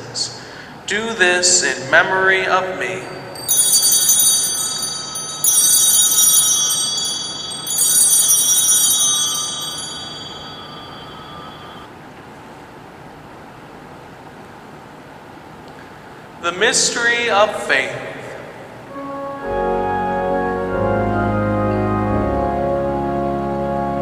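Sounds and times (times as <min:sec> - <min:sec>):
altar bells ringing: 0:01.9 - 0:11.9.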